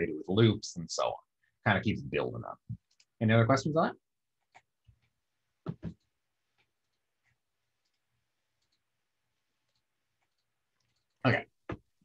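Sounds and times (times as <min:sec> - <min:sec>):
man speaking: 0:00.0 - 0:04.0, 0:11.2 - 0:11.6
faint clicks: 0:08.6 - 0:08.9.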